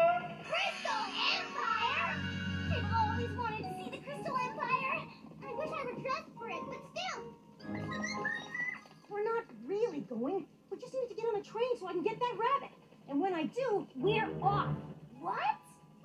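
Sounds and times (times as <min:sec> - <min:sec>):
high cartoon character voices: 0:00.0 - 0:08.9
light background music: 0:00.0 - 0:16.0.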